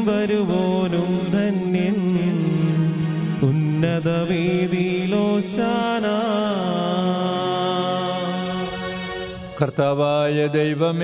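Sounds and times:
person chanting a prayer: 0.0 - 11.0.

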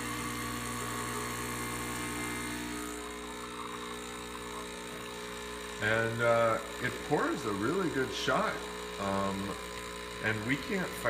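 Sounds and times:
espresso machine pump buzzing: 0.0 - 11.0.

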